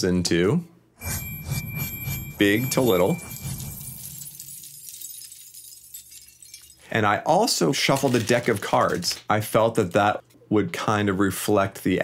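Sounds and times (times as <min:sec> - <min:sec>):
broken glass shards clinking: 0:02.7 - 0:06.9.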